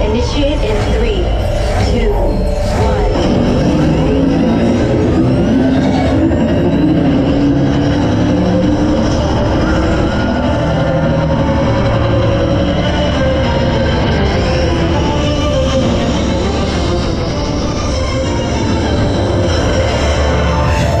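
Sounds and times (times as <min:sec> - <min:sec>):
onboard ride music: 0:00.0 - 0:21.0
roller coaster wind and wheel rumble: 0:00.0 - 0:21.0.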